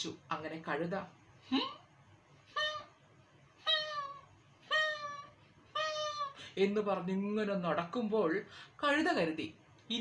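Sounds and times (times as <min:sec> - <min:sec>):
cat meowing: 0:03.6 - 0:06.4.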